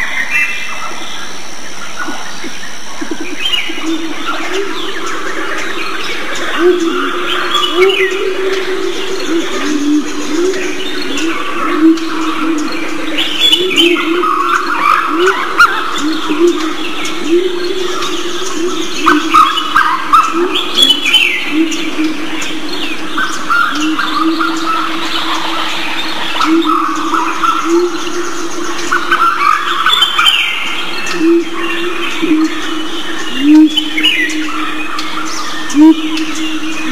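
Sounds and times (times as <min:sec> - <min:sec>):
birds chirping: 0:00.0 - 0:36.9
continuous low tone: 0:00.0 - 0:36.9.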